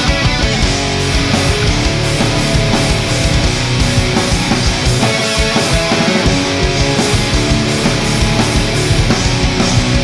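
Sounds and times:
bass: 0.0s - 10.0s
drums: 0.0s - 10.0s
electric guitars: 0.0s - 10.0s
keyboards: 0.0s - 10.0s.

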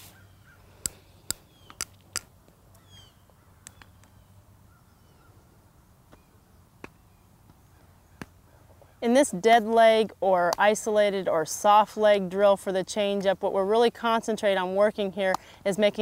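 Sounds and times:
faint bird chirps: 2.8s - 5.5s.

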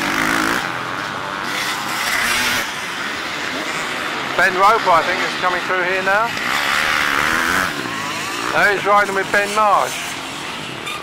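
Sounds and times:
dirt bike engines running: 0.0s - 11.0s.

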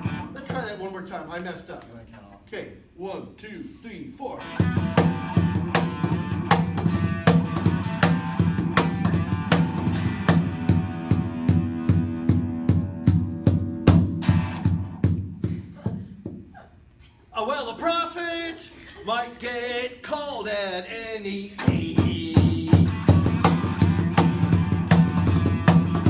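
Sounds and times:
low electric guitar riff: 0.0s - 0.4s, 4.4s - 15.0s, 21.6s - 26.0s
cajon strokes: 4.6s - 16.4s, 21.6s - 26.0s.

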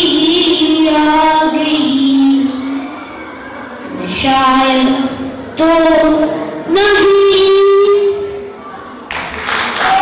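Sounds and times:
boy singing into microphone: 0.0s - 3.1s, 3.8s - 8.8s.

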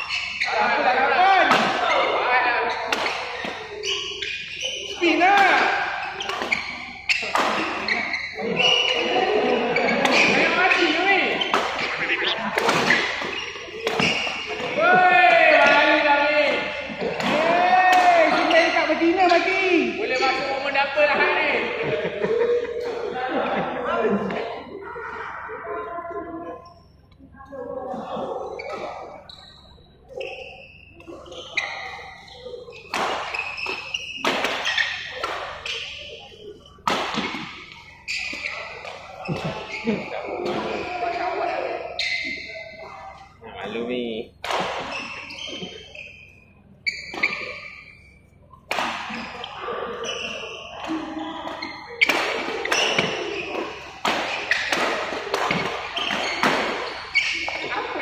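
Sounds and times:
players' voices: 0.0s - 58.0s
racket striking shuttlecock: 5.6s - 8.1s, 11.4s - 14.8s, 32.8s - 36.1s, 36.8s - 39.0s, 51.5s - 56.9s.

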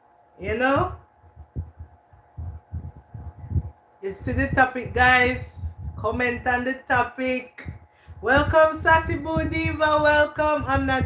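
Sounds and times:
faint steady hum: 0.0s - 11.0s
soft dull low thumps: 0.4s - 11.0s.

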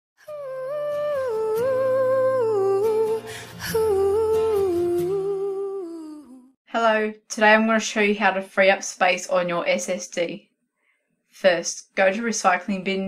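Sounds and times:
hummed melody: 0.2s - 6.6s.

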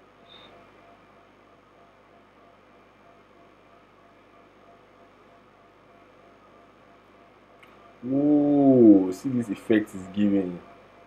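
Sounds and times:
faint pulsing tone: 0.0s - 11.0s
low hum and hiss: 0.0s - 11.0s.

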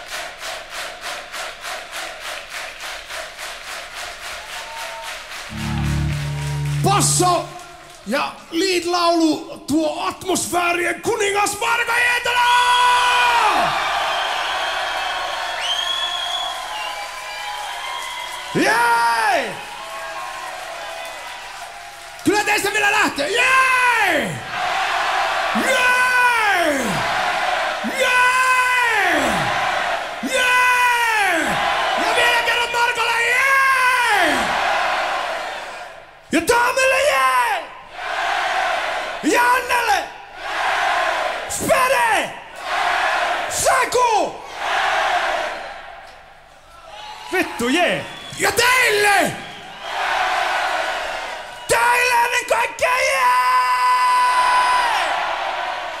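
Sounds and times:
crowd cheering: 4.3s - 8.0s, 13.0s - 36.0s, 46.8s - 52.1s, 53.9s - 56.0s
man yelling into microphone: 10.0s - 13.7s, 18.6s - 19.6s, 22.3s - 24.4s, 25.6s - 27.0s, 27.8s - 29.5s, 30.2s - 34.5s, 36.4s - 37.7s, 39.2s - 40.1s, 51.8s - 55.1s.

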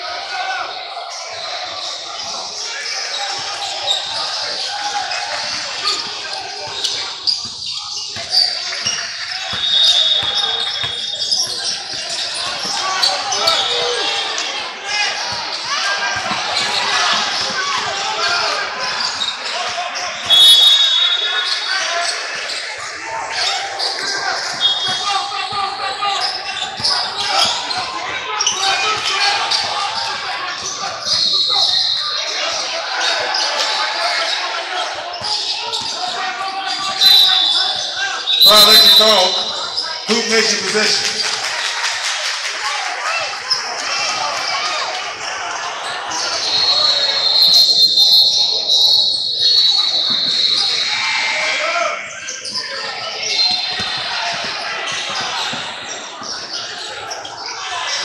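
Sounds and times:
voices calling out: 0.0s - 41.9s
sneakers squeaking: 0.7s - 41.3s, 45.8s - 58.0s.

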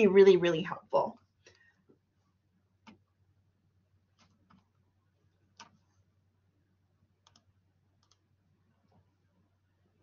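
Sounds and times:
low steady hum: 0.0s - 10.0s
computer mouse clicks: 2.8s - 3.0s, 4.2s - 4.7s, 5.5s - 5.8s, 7.2s - 8.3s.

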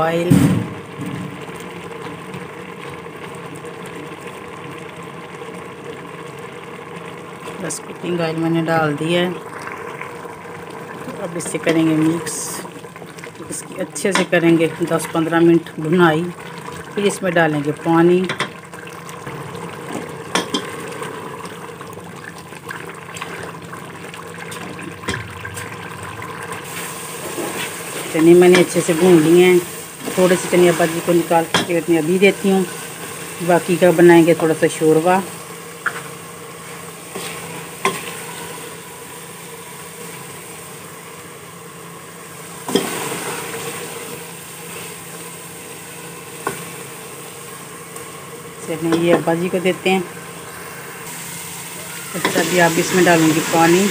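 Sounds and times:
food sizzling in hot oil: 0.0s - 53.9s.

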